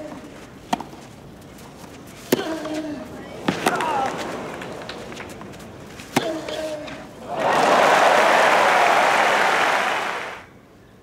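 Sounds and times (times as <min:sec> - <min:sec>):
crowd applauding: 0:07.3 - 0:10.5.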